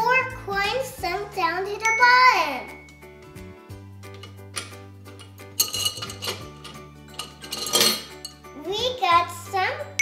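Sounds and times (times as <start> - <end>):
background music: 0.0 - 10.0
metal objects clinking in glass jar: 4.1 - 8.5.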